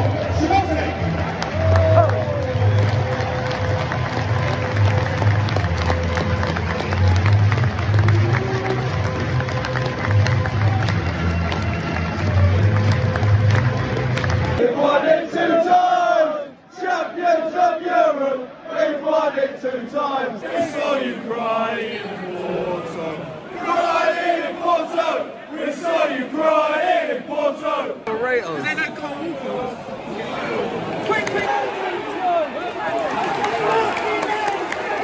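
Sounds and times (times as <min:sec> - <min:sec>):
stadium crowd noise: 0:00.0 - 0:35.0
crowd singing and chanting: 0:14.4 - 0:28.1.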